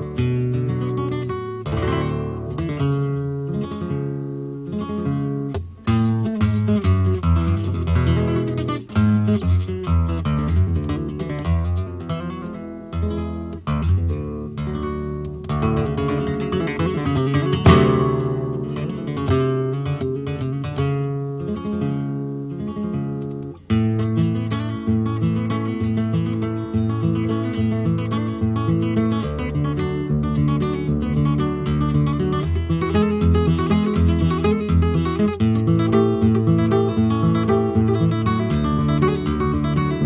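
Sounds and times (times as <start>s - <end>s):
flamenco guitar: 0.0s - 40.0s.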